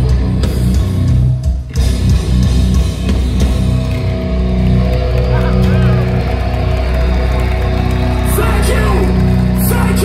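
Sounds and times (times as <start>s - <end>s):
metal band playing live: 0.0s - 10.0s.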